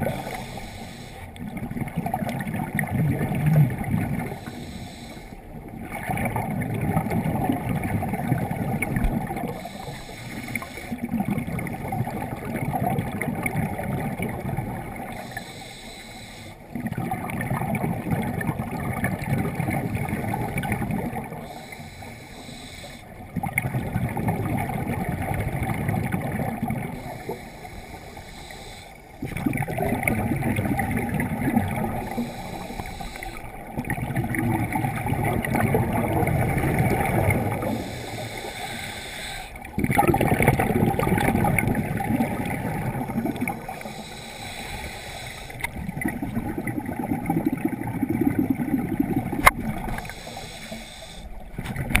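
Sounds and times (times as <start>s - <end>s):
diver breathing: 0.0s - 1.4s, 4.2s - 5.5s, 9.5s - 11.1s, 15.0s - 16.7s, 21.2s - 23.2s, 26.8s - 29.2s, 30.9s - 33.8s, 35.4s - 39.8s, 42.2s - 46.3s, 49.4s - 52.0s
underwater exhaled bubbles gurgling: 0.0s - 52.0s.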